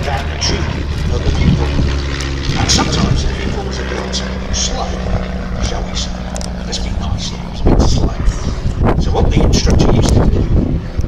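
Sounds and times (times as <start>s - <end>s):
propeller plane engine drone: 0.0s - 11.0s.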